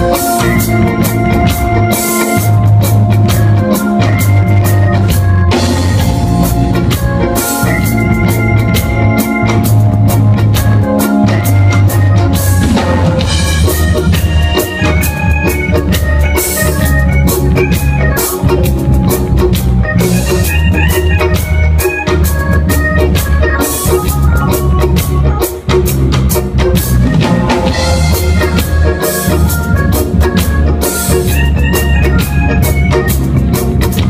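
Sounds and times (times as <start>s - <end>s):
bass guitar line: 0.0s - 34.0s
drum kit: 0.0s - 34.0s
organ melody: 0.0s - 34.0s.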